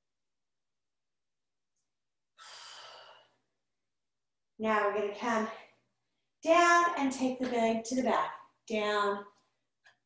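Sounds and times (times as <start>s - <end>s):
woman exhaling: 2.4s - 3.4s.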